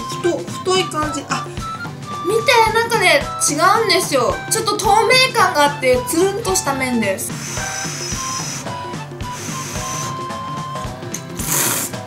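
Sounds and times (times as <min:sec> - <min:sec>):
background music: 0:00.0 - 0:12.0
noodles being slurped: 0:07.3 - 0:10.2, 0:11.2 - 0:12.0.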